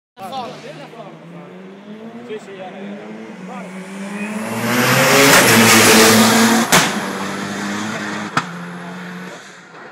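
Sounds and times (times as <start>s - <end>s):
race car engine passing: 0.2s - 9.7s.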